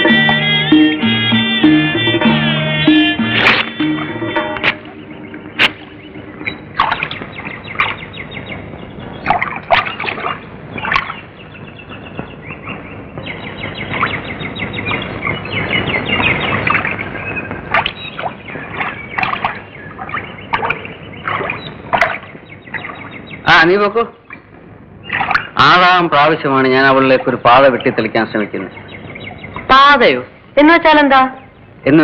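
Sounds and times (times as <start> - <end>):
birds chirping: 0.0 - 32.0
steady hiss: 23.3 - 30.8.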